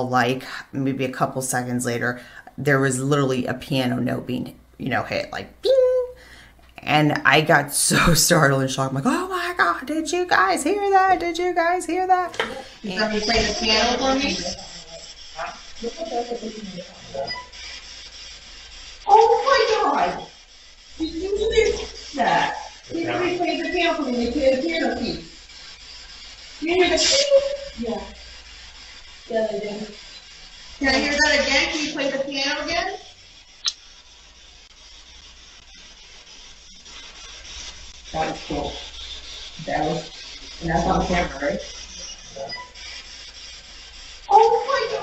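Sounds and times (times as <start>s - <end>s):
voices talking: 6.8s - 17.4s, 19.1s - 20.4s, 21.0s - 25.3s, 30.8s - 33.1s, 38.1s - 43.0s, 44.2s - 45.0s
faint radio static: 7.1s - 18.2s, 19.0s - 25.7s, 26.4s - 45.0s.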